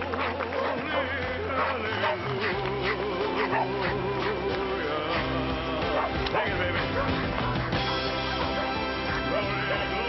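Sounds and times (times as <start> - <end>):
background music: 0.0 - 10.0
dog barking: 0.2 - 4.4, 6.0 - 7.2, 8.4 - 9.9.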